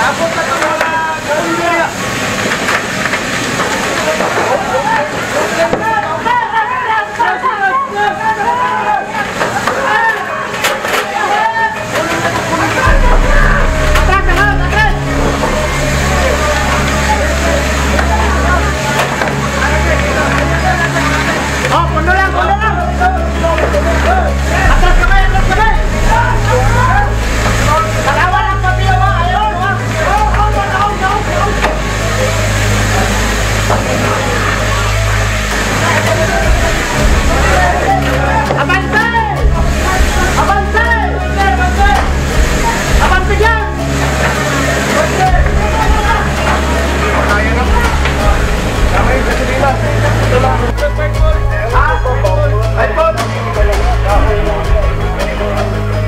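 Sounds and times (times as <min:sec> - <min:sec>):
people talking and calling out: 0:00.0 - 0:56.0
low engine drone: 0:12.6 - 0:52.7
low engine-like rumble: 0:12.8 - 0:19.2.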